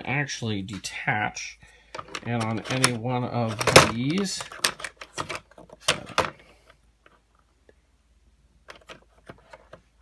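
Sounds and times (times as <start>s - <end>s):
plastic toy parts clicking: 2.0s - 6.3s.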